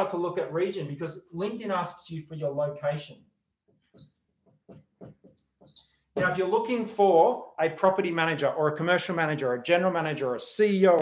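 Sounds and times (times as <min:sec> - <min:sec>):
marker scratching on whiteboard: 0:03.7 - 0:06.2
marker squeaking on whiteboard: 0:03.7 - 0:06.3.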